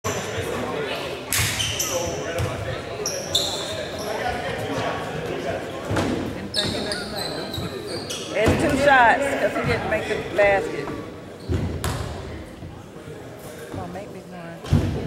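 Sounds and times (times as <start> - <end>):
echoing chatter: 0.0 - 15.0
sneaker squeaks: 1.4 - 4.8, 6.0 - 8.8, 11.3 - 12.2.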